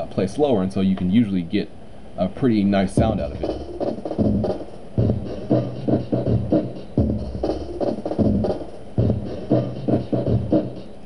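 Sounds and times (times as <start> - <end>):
drum loop beat: 2.6 - 11.0.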